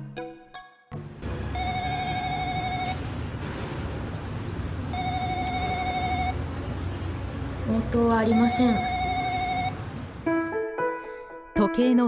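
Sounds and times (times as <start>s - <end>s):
intercom call tone: 1.5s - 3.1s, 4.9s - 6.4s, 7.7s - 9.8s.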